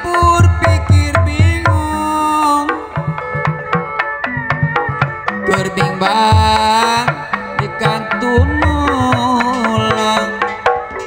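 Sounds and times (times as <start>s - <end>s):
hand drums beating: 0.0s - 11.0s.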